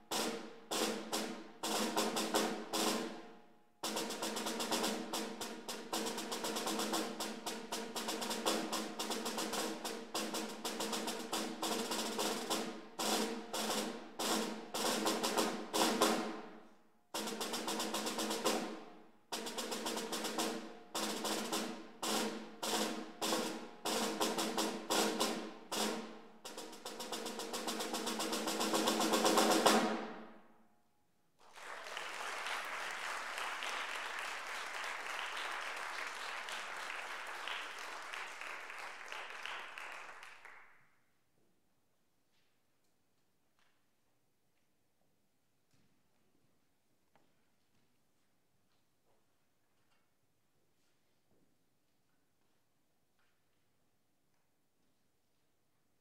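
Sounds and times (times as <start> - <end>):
snare drum rolls: 0.0 - 3.2, 3.8 - 16.5, 17.2 - 30.4, 31.5 - 40.6
audience applauding: 31.4 - 40.8.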